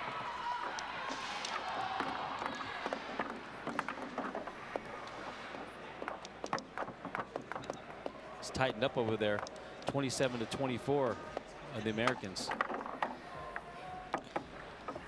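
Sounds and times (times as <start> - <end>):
table football clicks and knocks: 0.4 - 15.0.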